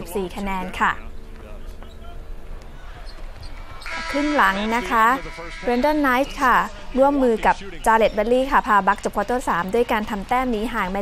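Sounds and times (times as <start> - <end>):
faint arena crowd noise: 0.0 - 11.0
steady low hum: 0.0 - 11.0.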